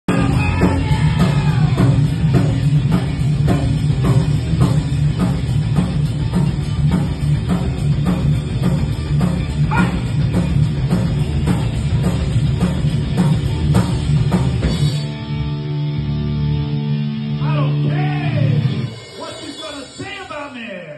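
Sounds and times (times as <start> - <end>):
live rock band playing: 0.1 - 20.9.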